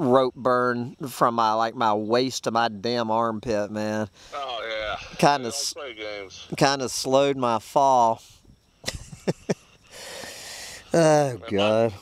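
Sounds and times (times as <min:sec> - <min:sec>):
soft hiss: 0:04.0 - 0:12.0.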